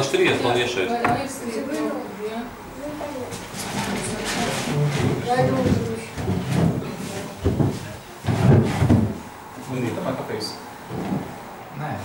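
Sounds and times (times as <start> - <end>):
indistinct voices talking: 0.0 - 8.2
handling noise: 3.3 - 9.8.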